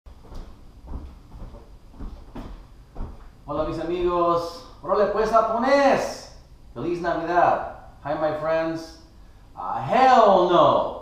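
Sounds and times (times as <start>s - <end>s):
dull knocks and thumps: 0.1s - 3.9s.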